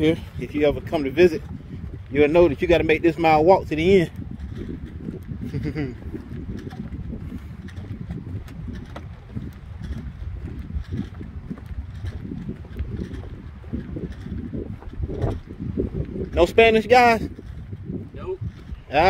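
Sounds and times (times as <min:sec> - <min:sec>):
footsteps on wooden planks: 0:00.0 - 0:19.0
wind buffeting microphone: 0:00.0 - 0:19.0.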